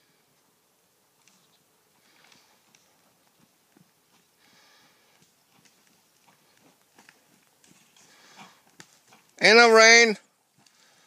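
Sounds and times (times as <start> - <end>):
faint hooves trotting on sand: 0.0 - 11.0.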